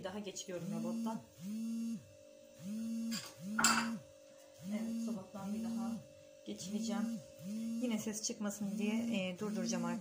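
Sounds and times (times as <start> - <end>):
immersion blender motor humming: 0.4 - 10.0.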